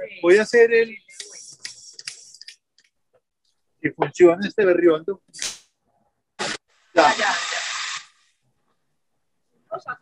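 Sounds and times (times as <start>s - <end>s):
gas torch hissing: 6.4s - 8.2s.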